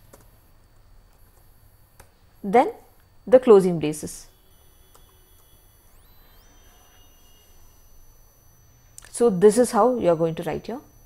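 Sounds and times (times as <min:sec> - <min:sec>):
low hum: 0:00.0 - 0:11.0
faint high-pitched tones: 0:00.4 - 0:11.0.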